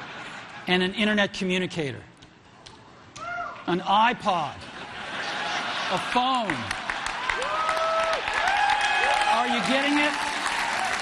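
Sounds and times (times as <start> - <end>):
audience applauding: 5.4 - 11.0
long whoops: 7.3 - 9.3.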